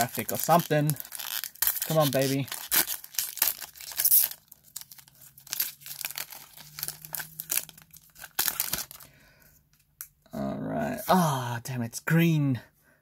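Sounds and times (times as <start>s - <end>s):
foil wrapper tearing and crinkling: 0.0s - 9.1s.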